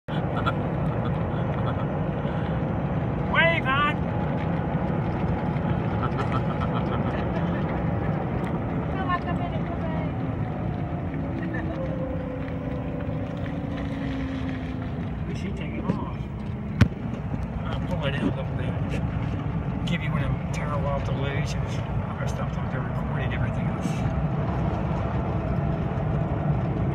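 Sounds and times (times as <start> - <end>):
golf cart rumbling: 0.0 - 26.9.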